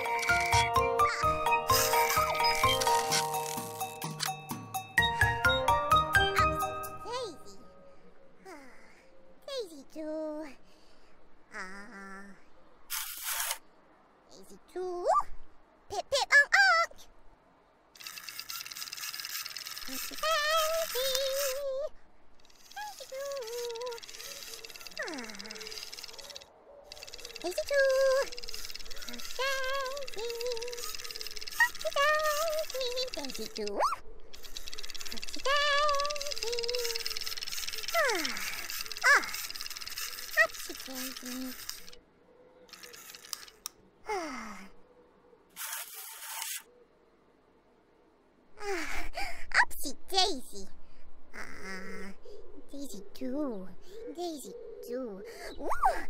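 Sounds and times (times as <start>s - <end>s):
short blips: 22.4s - 42.0s
warbling cartoon tones: 22.5s - 42.0s.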